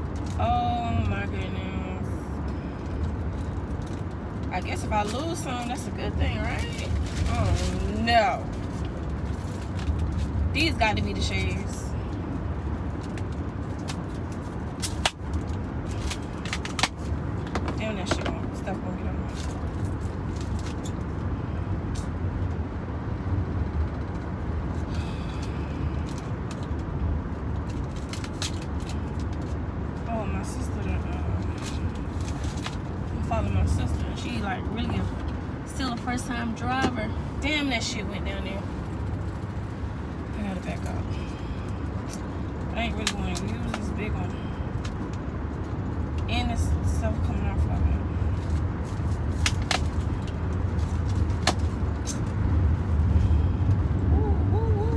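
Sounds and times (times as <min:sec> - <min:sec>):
road and engine rumble in car: 0:00.0 - 0:54.9.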